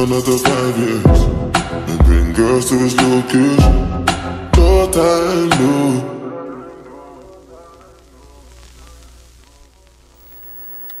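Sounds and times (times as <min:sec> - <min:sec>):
tv static hiss: 0:06.4 - 0:11.0.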